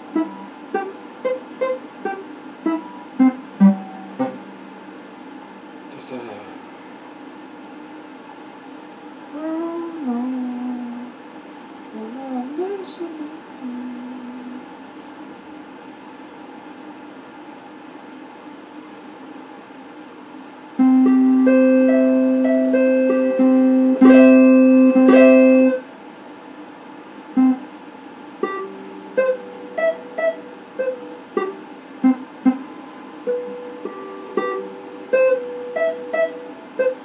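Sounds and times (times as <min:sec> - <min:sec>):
faint steady hum: 0:00.0 - 0:37.0
electric guitar: 0:20.8 - 0:25.8.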